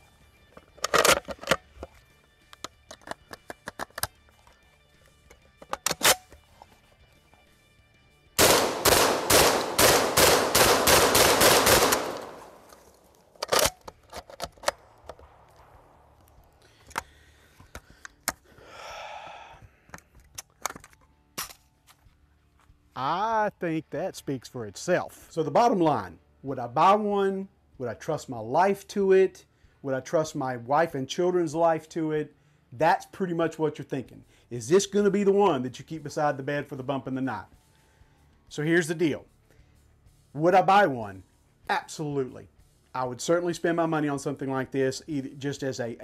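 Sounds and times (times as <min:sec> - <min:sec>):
gun handling clicks: 0:00.6 - 0:06.7, 0:08.4 - 0:18.4, 0:19.9 - 0:21.7
rapid shotgun shots: 0:08.4 - 0:12.6.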